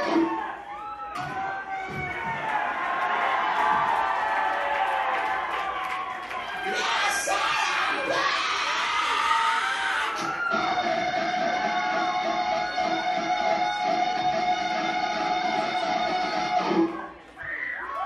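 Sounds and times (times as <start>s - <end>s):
crowd noise: 0.0s - 18.0s.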